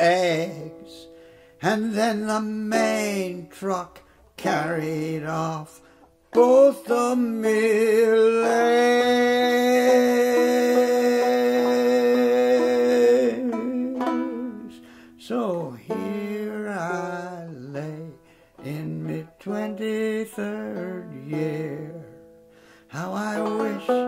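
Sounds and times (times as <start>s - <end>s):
banjo playing: 0.0s - 24.0s
man singing: 0.0s - 24.0s.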